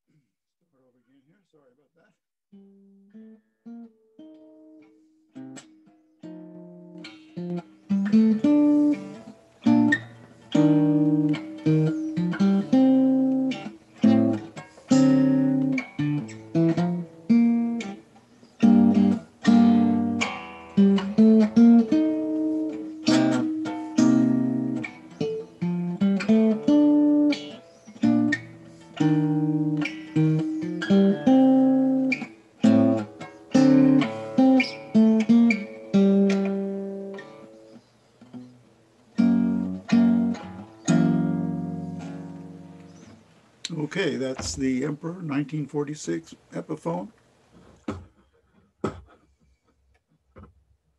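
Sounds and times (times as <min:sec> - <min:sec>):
acoustic guitar chords ringing: 0:02.6 - 0:37.6, 0:38.3 - 0:47.0.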